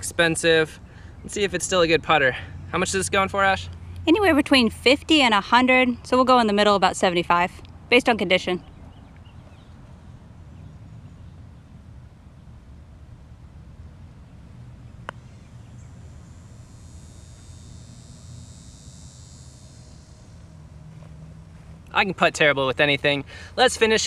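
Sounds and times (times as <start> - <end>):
insects buzzing: 0.0 - 24.0
low outdoor rumble: 0.0 - 24.0
putter striking golf ball: 15.0 - 15.6.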